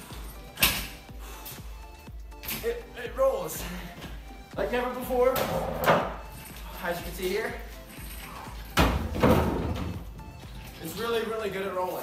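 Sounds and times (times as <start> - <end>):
office chair rolling on hard floor: 5.4 - 6.2.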